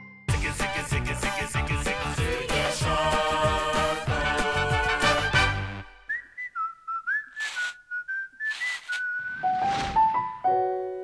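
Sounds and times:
whistled tune: 0:06.0 - 0:10.3.

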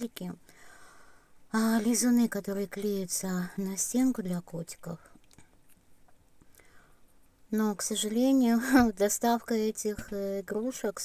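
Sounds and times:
faint soft clicks: 0:05.0 - 0:07.5.

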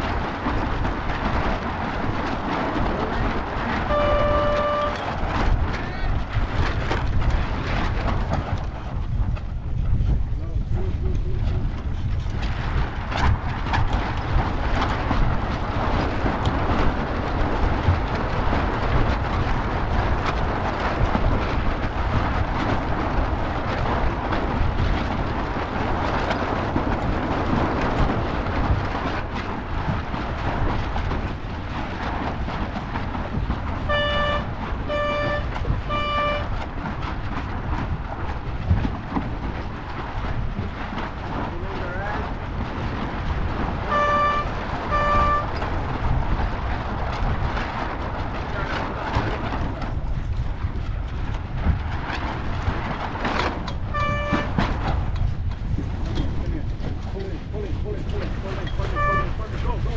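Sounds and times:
water rushing past hull: 0:00.0 - 0:09.0, 0:13.9 - 0:51.0, 0:51.6 - 0:59.9
wind buffeting microphone: 0:00.0 - 0:59.9.

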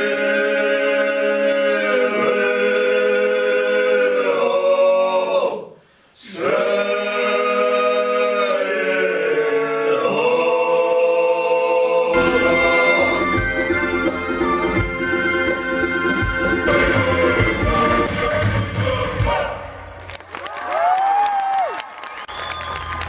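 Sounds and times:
men singing a cappella: 0:00.0 - 0:13.8, 0:16.5 - 0:19.7.

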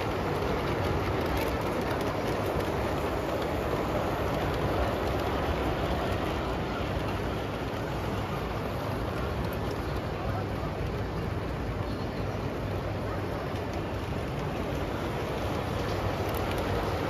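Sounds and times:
model train wheels rattling on rails: 0:00.0 - 0:17.0.

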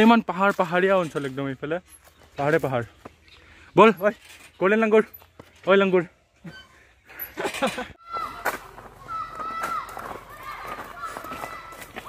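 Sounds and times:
footsteps on dry leaves: 0:08.2 - 0:12.0.

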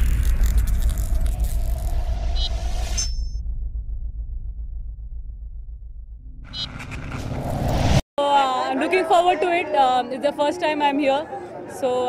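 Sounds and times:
low pulsing rumble: 0:00.0 - 0:08.0
rising whoosh: 0:00.0 - 0:08.0.

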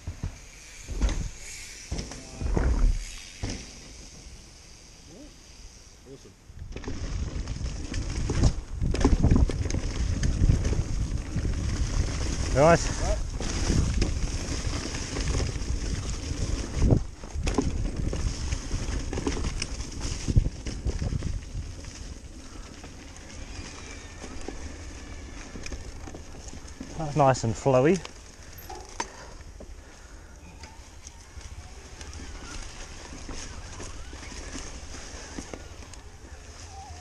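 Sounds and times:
bike knocking and rattling: 0:00.0 - 0:04.5, 0:06.6 - 0:37.0
wind rushing over microphone: 0:07.2 - 0:22.0.

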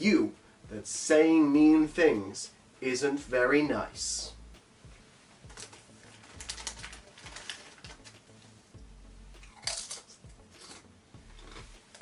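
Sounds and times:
chips being crunched: 0:05.5 - 0:08.3, 0:09.4 - 0:12.0
snack packet crinkling: 0:05.5 - 0:08.3, 0:09.4 - 0:12.0.

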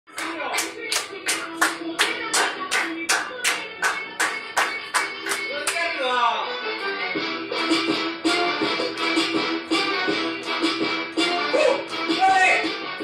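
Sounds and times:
handclaps: 0:00.1 - 0:05.8
music with singing voice: 0:00.1 - 0:13.0.

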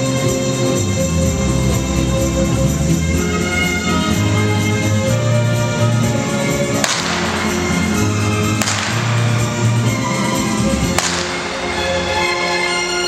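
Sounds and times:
orchestral show music: 0:00.0 - 0:13.0
whip cracking: 0:06.7 - 0:12.4.

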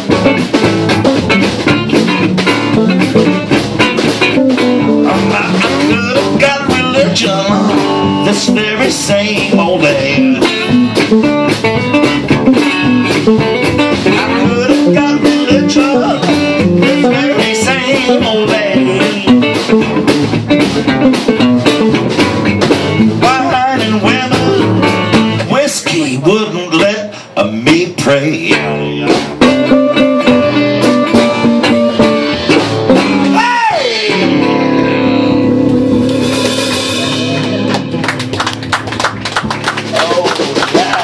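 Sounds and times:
electric guitar: 0:00.0 - 0:41.0
upright bass: 0:00.0 - 0:41.0
resonator guitar fingerpicked: 0:28.5 - 0:33.4, 0:34.1 - 0:38.3.

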